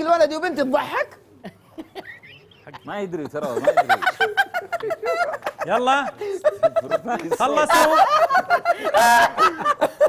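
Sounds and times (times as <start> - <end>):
men laughing: 1.4 - 10.0.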